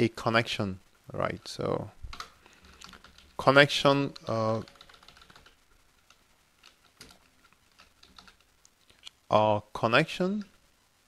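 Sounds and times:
soft keyboard typing: 2.1 - 9.1.

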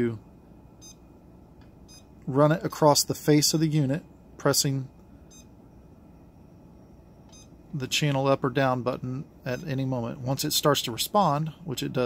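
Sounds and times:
low steady hum: 0.0 - 12.0
faint electronic beep: 0.8 - 1.1, 5.3 - 5.5, 6.8 - 7.6.

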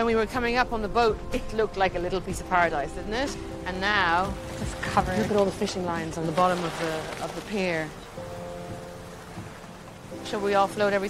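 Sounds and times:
soft background music: 0.0 - 11.0
waves washing around pier posts: 3.1 - 11.0.

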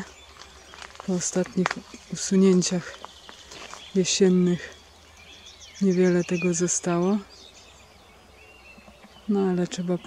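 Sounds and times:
faint bird chirp: 0.0 - 10.0
woman speaking: 1.1 - 3.0, 4.0 - 4.8, 5.8 - 7.3, 9.3 - 10.0.

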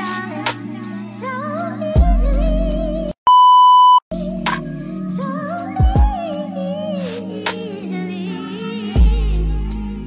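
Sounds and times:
music with singing: 0.0 - 3.2, 4.1 - 10.0
electronic censor bleep: 3.3 - 4.0.

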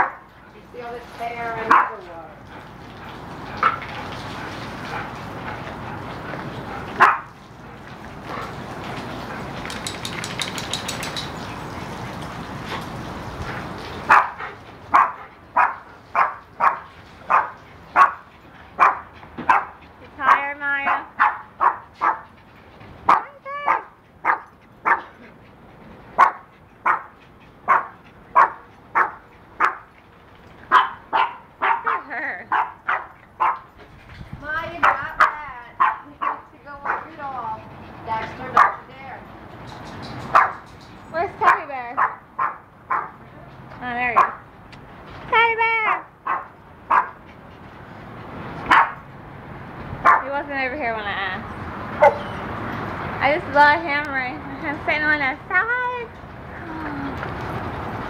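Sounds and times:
dogs barking: 1.6 - 2.0, 6.9 - 7.4, 14.0 - 22.4, 23.0 - 25.2, 26.2 - 29.9, 30.7 - 33.7, 34.8 - 37.5, 38.1 - 38.9, 40.3 - 40.6, 41.4 - 43.3, 44.2 - 44.5, 45.9 - 47.3, 48.7 - 49.0, 50.0 - 50.3, 52.0 - 52.4
dog whining and yipping: 52.0 - 52.4.

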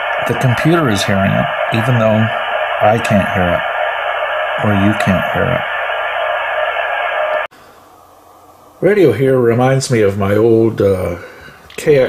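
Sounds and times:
radio static hiss: 0.0 - 7.5.

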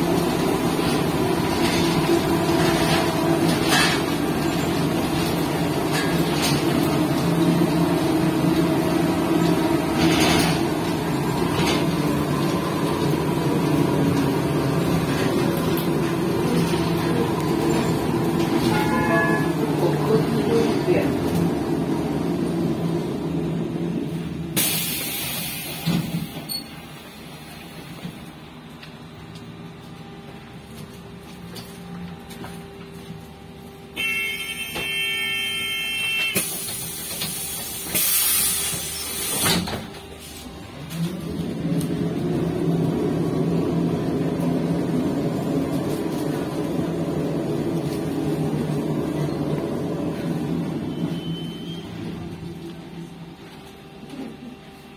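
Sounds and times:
trolleybus drive hum: 0.0 - 54.9
pneumatic doors hissing: 24.5 - 27.4, 36.3 - 40.3
road and body noise: 27.4 - 34.0
electronic warning tone: 34.0 - 36.4.

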